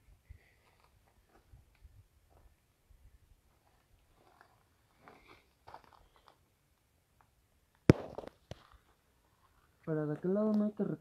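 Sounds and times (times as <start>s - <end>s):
faint crunches and rustles: 3.5s - 6.5s
sharp knock: 7.9s - 8.3s.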